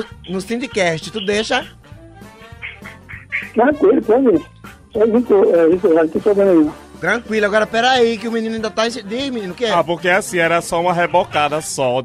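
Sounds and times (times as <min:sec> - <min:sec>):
background music: 0:00.0 - 0:12.0
person speaking loudly: 0:03.5 - 0:04.4, 0:05.0 - 0:06.8.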